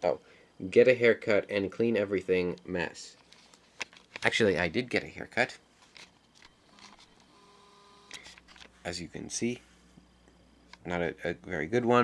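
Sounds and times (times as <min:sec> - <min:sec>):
faint steady tone: 0:00.0 - 0:12.0.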